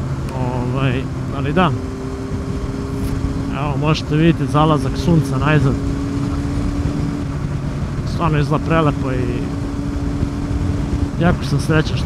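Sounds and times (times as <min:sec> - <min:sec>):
motorcycle engine whine: 0:00.0 - 0:12.0
wind rush on microphone: 0:00.0 - 0:12.0
rider speaking: 0:00.3 - 0:01.9, 0:03.0 - 0:07.2, 0:07.9 - 0:09.8, 0:10.8 - 0:12.0.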